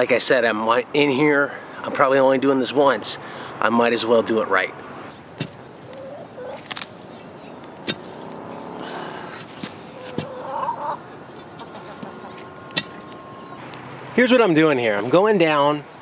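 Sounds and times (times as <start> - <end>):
chickens clucking: 5.1 - 14.0.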